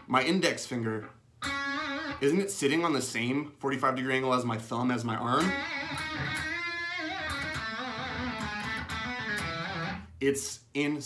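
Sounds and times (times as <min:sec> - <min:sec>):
electric guitar with vibrato: 0:01.4 - 0:02.2, 0:05.4 - 0:10.1.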